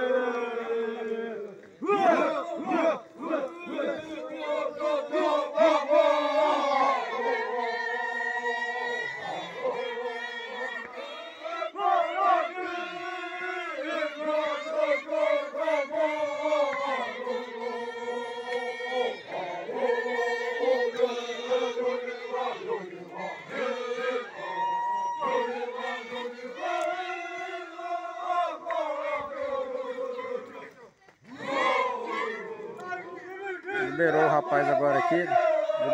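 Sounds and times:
men chanting in unison: 0:00.0 - 0:35.9.

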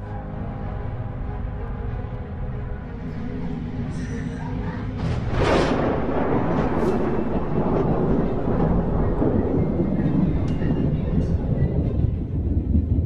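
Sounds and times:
low rumbling drone: 0:00.0 - 0:13.0.

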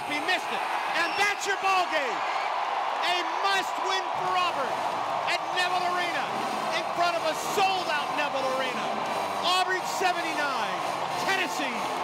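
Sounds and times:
announcer talking: 0:00.0 - 0:02.2, 0:03.0 - 0:11.8.

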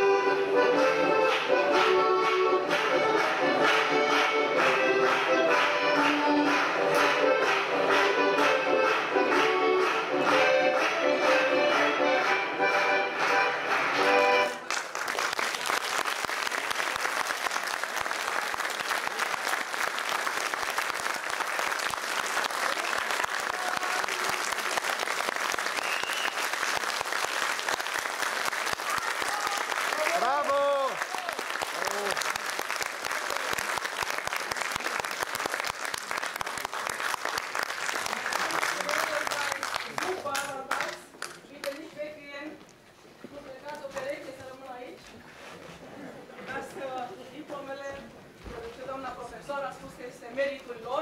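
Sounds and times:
audience applauding: 0:13.2 - 0:41.8.

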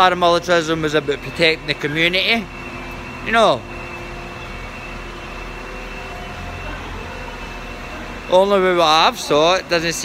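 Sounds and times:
mechanical hum: 0:00.0 - 0:10.0
thin high whine: 0:00.0 - 0:10.0.

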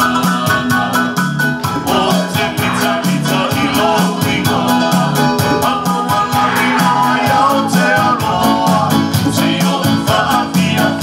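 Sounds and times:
backing band beat and bass: 0:00.0 - 0:11.0
choir singing church song: 0:00.0 - 0:11.0.

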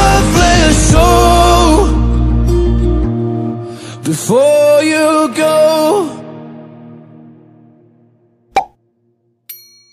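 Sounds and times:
short pop click effect: 0:08.5 - 0:08.8.

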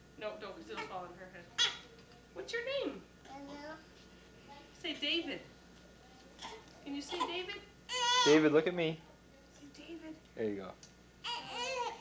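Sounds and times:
newborn baby crying: 0:06.4 - 0:08.5, 0:11.2 - 0:12.0.

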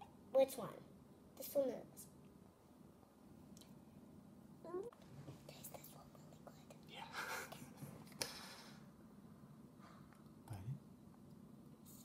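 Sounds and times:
faint whispering: 0:04.7 - 0:07.8.

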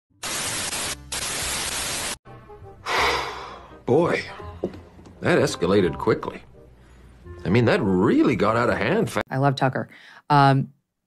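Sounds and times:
tv static hiss: 0:00.2 - 0:02.2.

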